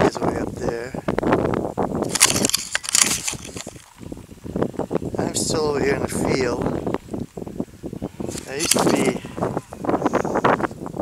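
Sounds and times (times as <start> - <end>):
close crackling and rustling: 2.0 - 5.1, 8.1 - 10.8.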